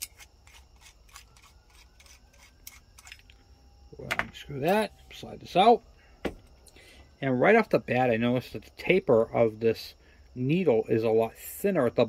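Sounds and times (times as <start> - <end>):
small metal parts clicking and rubbing: 0.0 - 3.4.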